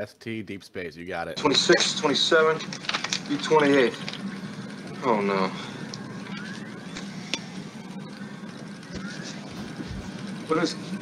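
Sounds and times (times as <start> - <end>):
rising electronic tones: 3.6 - 11.0.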